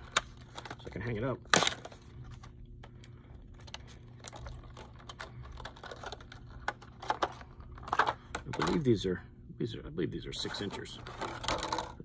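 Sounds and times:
packaging clicks and crinkles: 0:00.0 - 0:08.8
faint steady hum: 0:00.0 - 0:12.0.

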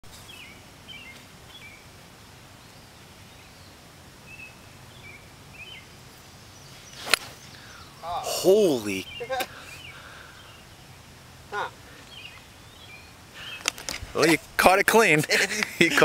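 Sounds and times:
birds chirping: 0:00.2 - 0:16.0
golf club striking ball: 0:07.0 - 0:07.4.

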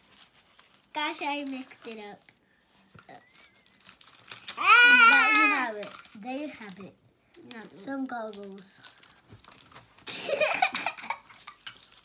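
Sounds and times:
adhesive tape crinkling and tearing: 0:00.0 - 0:02.4, 0:03.1 - 0:12.0
small crackles and clicks: 0:00.0 - 0:02.4, 0:03.0 - 0:10.2, 0:11.1 - 0:12.0.

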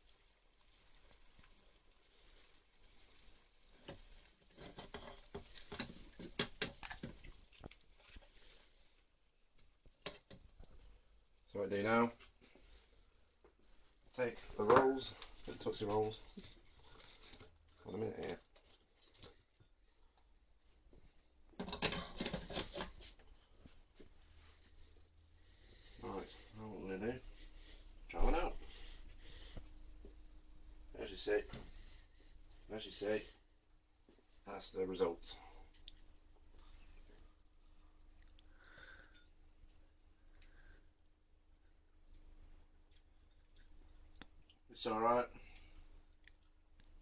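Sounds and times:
rustling of fried food in wire basket: 0:00.0 - 0:11.3, 0:12.1 - 0:19.5, 0:21.5 - 0:33.4
faint steady hum: 0:00.0 - 0:47.0
faint clicks: 0:35.7 - 0:44.6.

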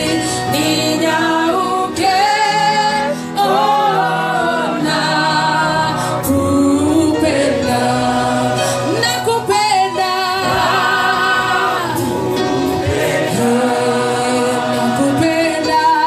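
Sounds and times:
choir singing gospel song: 0:00.0 - 0:16.0.

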